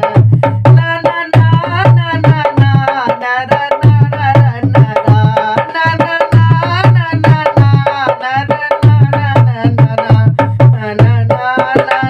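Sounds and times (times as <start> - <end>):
dholak drumming: 0.0 - 12.0
man singing: 0.0 - 12.0.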